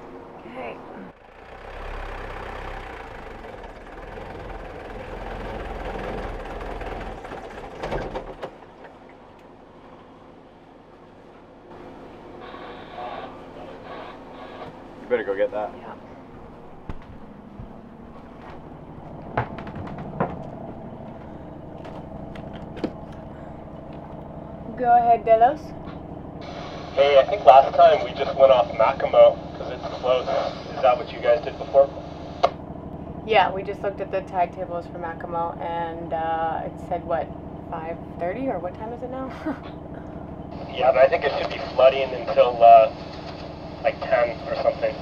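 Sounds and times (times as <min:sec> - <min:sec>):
marine diesel engine running: 0:00.0 - 0:45.0.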